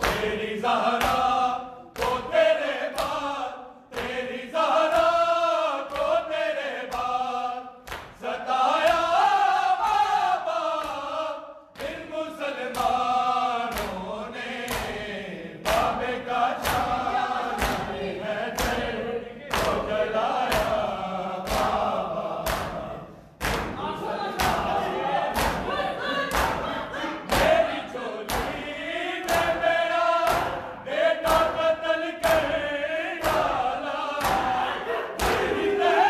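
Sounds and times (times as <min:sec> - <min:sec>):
hands slapping chests: 0:00.0 - 0:00.4, 0:07.8 - 0:08.2, 0:10.7 - 0:12.1, 0:12.7 - 0:14.1, 0:14.7 - 0:15.0, 0:15.6 - 0:27.7, 0:28.3 - 0:32.6, 0:33.2 - 0:35.7
men chanting in unison: 0:00.0 - 0:36.0.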